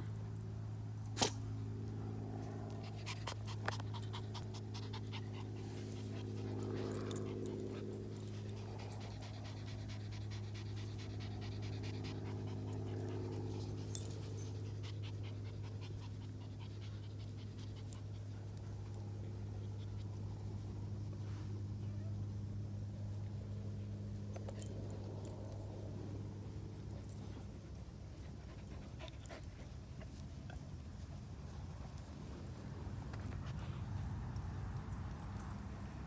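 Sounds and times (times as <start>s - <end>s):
steady low hum: 0.0s - 36.0s
dogs panting: 2.2s - 21.3s, 24.3s - 36.0s.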